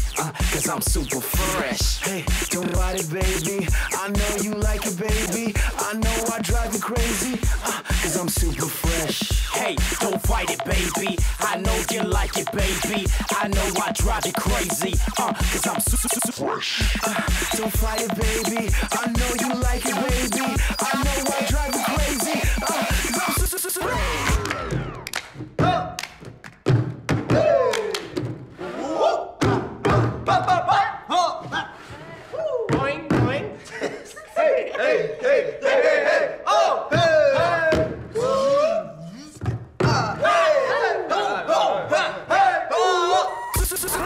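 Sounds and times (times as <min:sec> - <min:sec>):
music: 0:00.0 - 0:27.5, 0:43.4 - 0:44.0
hand claps: 0:24.4 - 0:25.4, 0:26.0 - 0:26.6
young men yelling and whooping: 0:34.2 - 0:39.0, 0:39.9 - 0:44.0.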